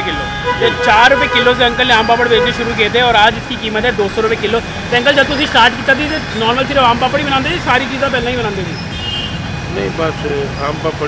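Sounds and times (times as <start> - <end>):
men talking: 0.0 - 8.9, 9.6 - 11.0
street background noise: 0.0 - 11.0.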